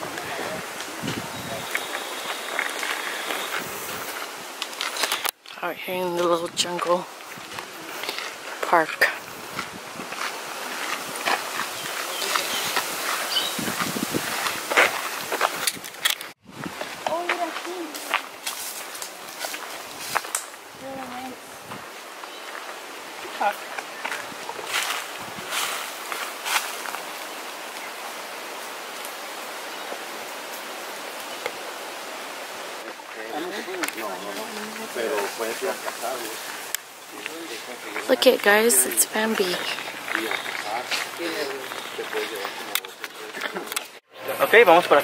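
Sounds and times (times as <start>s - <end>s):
steady outdoor hiss: 0.0s - 45.0s
footsteps crunching on gravel: 6.2s - 20.4s, 21.7s - 27.2s, 32.9s - 44.0s
murmured voices: 32.8s - 45.0s.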